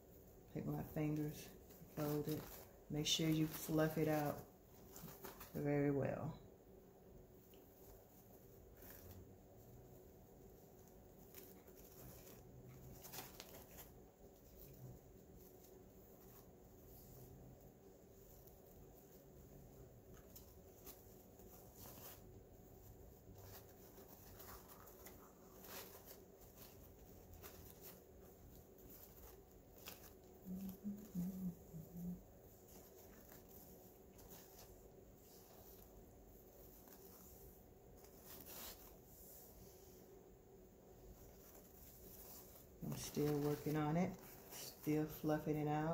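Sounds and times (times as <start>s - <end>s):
ribbon rustling and crinkling: 0.0s - 45.9s.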